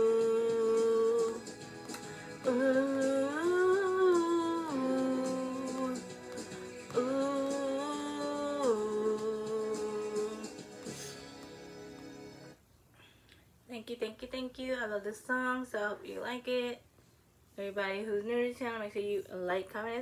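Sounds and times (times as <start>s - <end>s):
woman humming a melody: 0.0s - 1.4s, 6.9s - 10.5s.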